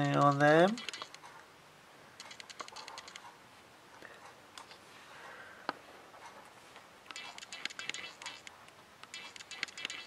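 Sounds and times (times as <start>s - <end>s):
camera lens clicks: 0.7s - 1.2s, 2.2s - 3.3s.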